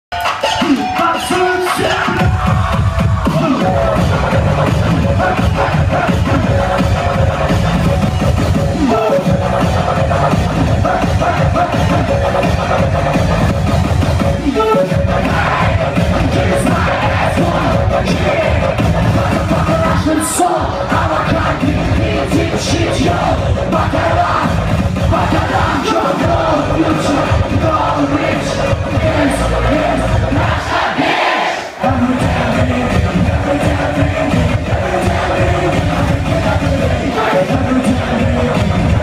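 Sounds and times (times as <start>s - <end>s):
electronic dance music: 0.1s - 39.0s
crowd cheering: 15.0s - 39.0s.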